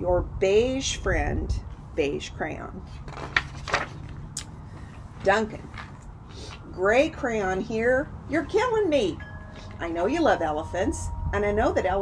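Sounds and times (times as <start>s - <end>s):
book page turning: 2.9s - 5.0s.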